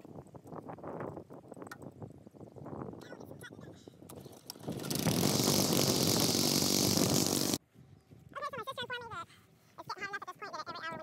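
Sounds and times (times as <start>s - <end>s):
string trimmer engine running: 4.2s - 7.6s
trimmer line cutting grass: 4.2s - 7.6s.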